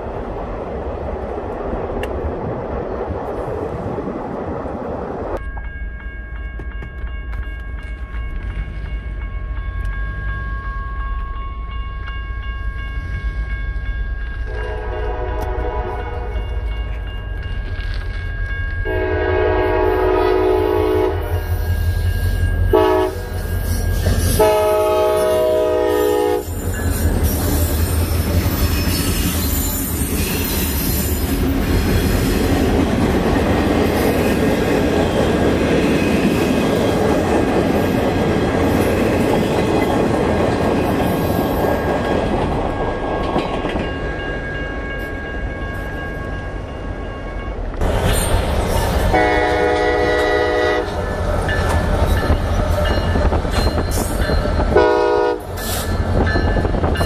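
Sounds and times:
freight train passing: 0:00.0 - 0:57.0
crossing bell ringing: 0:05.4 - 0:57.0
locomotive air horn: 0:14.5 - 0:16.4, 0:18.9 - 0:21.5, 0:22.7 - 0:23.4, 0:24.3 - 0:26.6, 0:49.1 - 0:51.0, 0:54.8 - 0:55.6.

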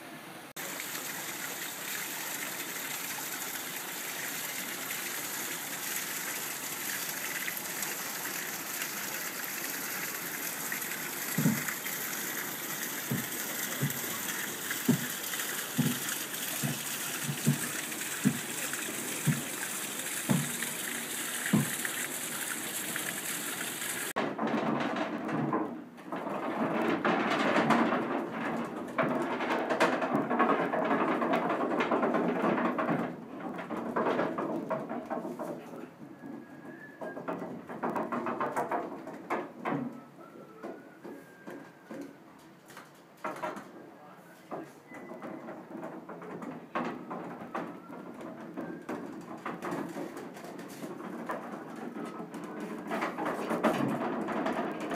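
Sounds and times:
water rushing and splashing: 0:00.0 - 0:24.2
low knocks: 0:11.3 - 0:11.8, 0:13.0 - 0:19.6, 0:20.2 - 0:20.7.

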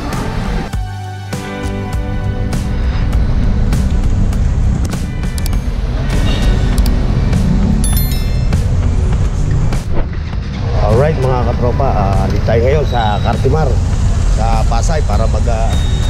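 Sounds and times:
city street traffic rumble: 0:00.0 - 0:00.7, 0:02.0 - 0:16.0
background music: 0:00.0 - 0:16.0
high chimes: 0:07.8 - 0:09.1.

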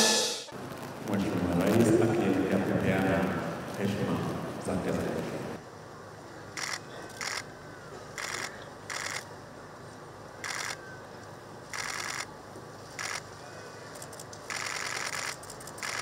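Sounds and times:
camera shutter bursts: 0:06.6 - 0:07.5, 0:08.2 - 0:09.3, 0:10.4 - 0:10.8, 0:11.7 - 0:12.3, 0:13.0 - 0:13.3, 0:14.0 - 0:16.0.

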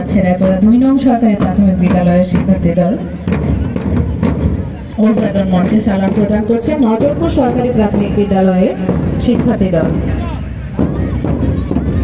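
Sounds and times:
march music: 0:01.4 - 0:12.0.

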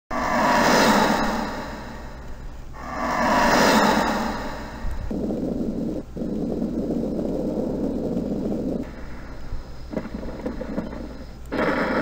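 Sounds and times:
whooshes: 0:00.1 - 0:05.6.

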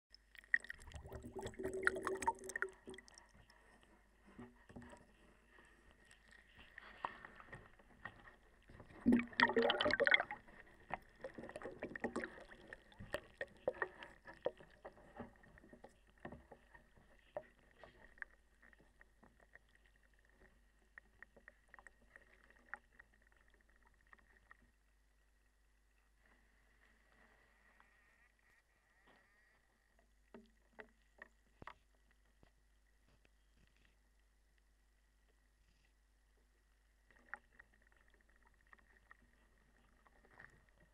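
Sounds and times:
water sloshing in a tank: 0:00.1 - 0:03.6, 0:08.8 - 0:18.8
small ticks in water tank: 0:00.1 - 0:03.8.

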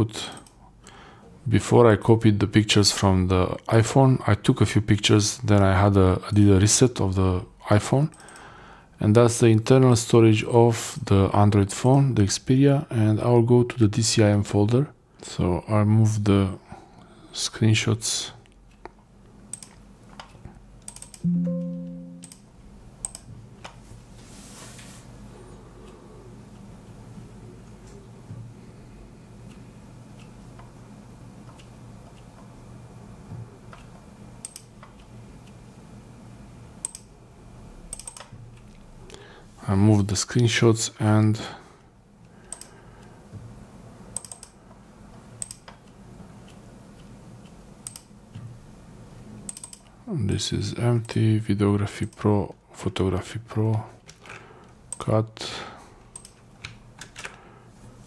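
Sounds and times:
low steady hum: 0:00.0 - 0:58.0
computer mouse clicks: 0:00.3 - 0:00.6, 0:08.1 - 0:08.5, 0:18.4 - 0:21.3, 0:23.0 - 0:23.8, 0:31.5 - 0:32.5, 0:33.7 - 0:35.6, 0:36.8 - 0:37.1, 0:37.9 - 0:38.8, 0:42.4 - 0:42.8, 0:44.2 - 0:44.6, 0:45.4 - 0:48.5, 0:49.5 - 0:49.9, 0:56.0 - 0:57.4
low note with overtones: 0:21.2 - 0:22.3.

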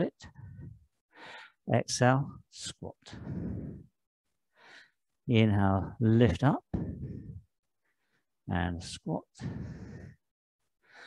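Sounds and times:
man breathing out: 0:03.1 - 0:03.9, 0:09.4 - 0:10.2
short in-breath: 0:03.1 - 0:03.9, 0:06.8 - 0:08.2, 0:09.4 - 0:10.2.

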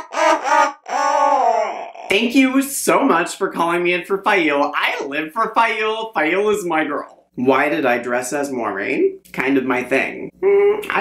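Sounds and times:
person laughing: 0:00.0 - 0:01.8.

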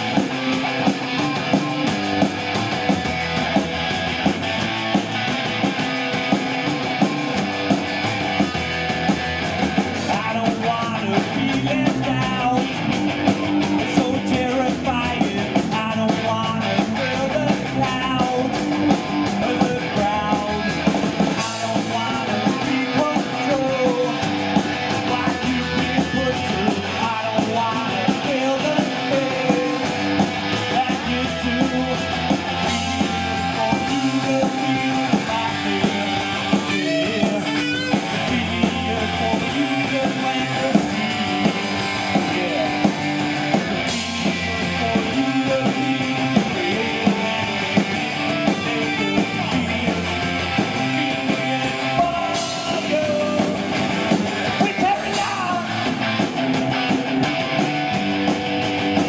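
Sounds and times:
bass: 0:00.0 - 0:59.0
drums: 0:00.0 - 0:59.0
electric guitars: 0:00.0 - 0:59.0.

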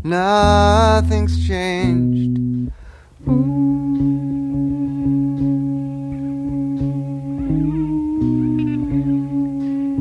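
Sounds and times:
electric guitar tremolo picking: 0:00.0 - 0:10.0.

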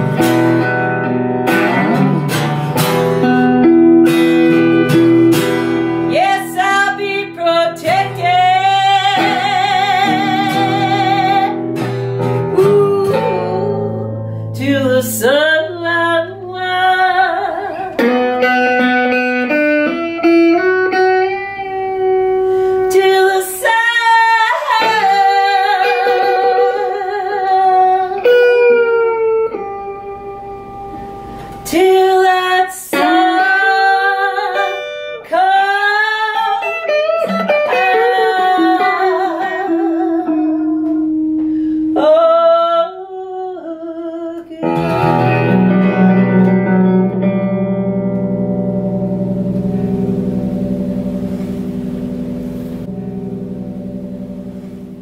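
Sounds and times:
acoustic and electric guitar: 0:00.0 - 0:55.0
woman singing: 0:05.6 - 0:18.6, 0:21.3 - 0:30.2, 0:31.6 - 0:47.2.

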